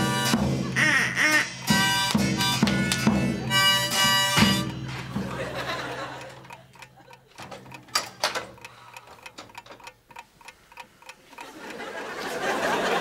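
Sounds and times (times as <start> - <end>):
steady regular ticking: 0.2 - 13.0.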